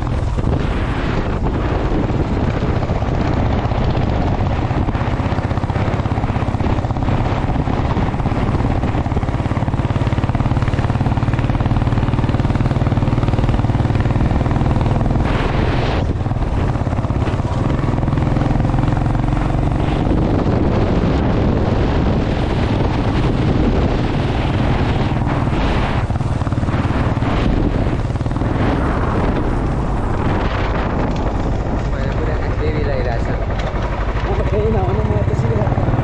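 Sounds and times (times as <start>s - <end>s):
motorcycle engine running: 0.0s - 36.0s.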